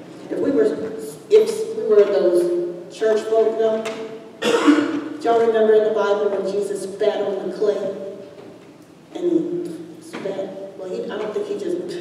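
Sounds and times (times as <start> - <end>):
person clearing throat: 4.4 - 5.1.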